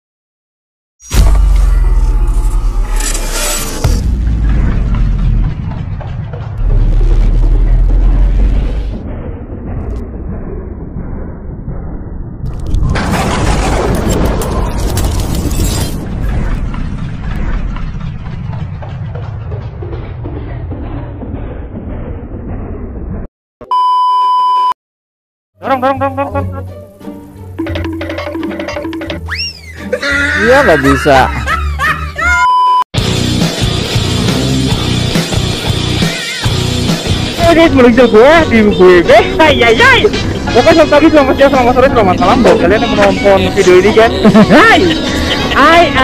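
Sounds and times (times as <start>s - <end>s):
deep explosion-like booms: 1.0s - 23.3s
drum-heavy intro music: 1.1s - 9.0s, 26.4s - 29.4s, 33.0s - 45.8s
low rumble: 1.1s - 23.3s, 33.0s - 46.0s
steady test-tone beep: 23.6s - 24.8s, 32.4s - 32.8s.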